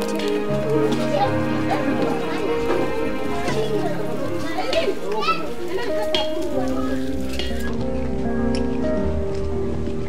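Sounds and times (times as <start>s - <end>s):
background music: 0.0s - 10.0s
children chattering: 0.0s - 10.0s.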